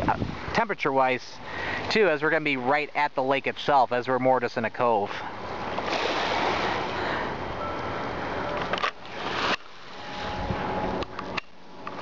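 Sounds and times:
wind blowing on microphone: 0.0s - 0.6s, 9.2s - 11.4s
waves lapping at shore: 5.1s - 12.0s.

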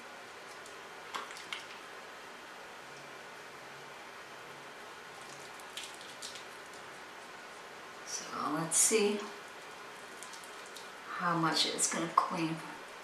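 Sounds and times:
wet squishing of foam lather: 5.1s - 7.3s, 9.5s - 11.1s.

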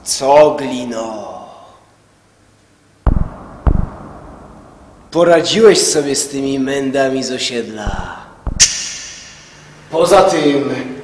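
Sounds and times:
deep thuds: 3.1s - 4.5s, 7.9s - 8.8s.

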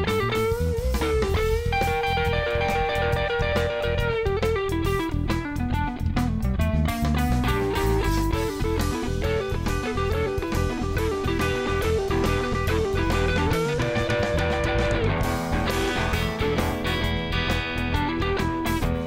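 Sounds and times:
bass guitar: 0.0s - 19.0s
drum kit: 0.0s - 19.0s
electric guitar lead: 0.0s - 19.0s.

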